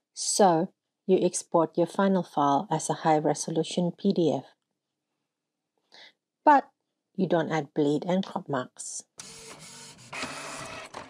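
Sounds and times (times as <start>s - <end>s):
printer mechanical whirr: 9.2s - 11.0s.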